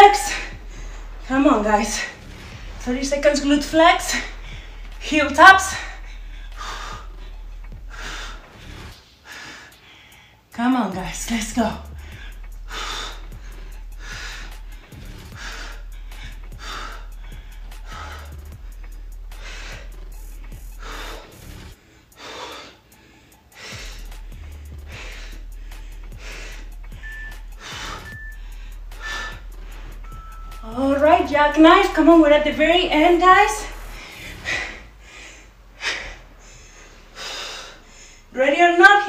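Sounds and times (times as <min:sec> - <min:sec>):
faint background music: 0:00.0 - 0:39.0
woman breathing hard: 0:00.3 - 0:01.3, 0:04.1 - 0:05.0, 0:05.8 - 0:10.5, 0:11.9 - 0:30.6, 0:33.7 - 0:38.3
short high beeps: 0:27.0 - 0:28.4, 0:30.1 - 0:30.7.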